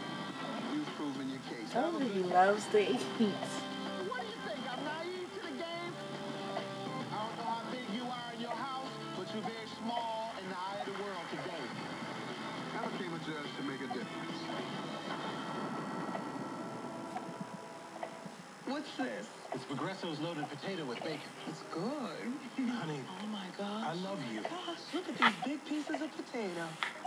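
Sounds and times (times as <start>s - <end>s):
television music: 0.0s - 27.0s.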